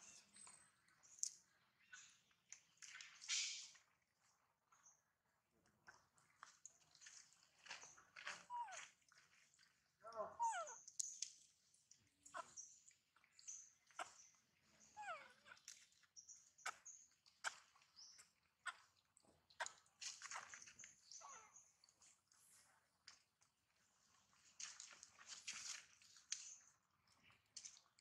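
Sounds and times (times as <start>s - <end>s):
baby monkey whimpering: 10.4s - 10.8s, 15.0s - 15.6s.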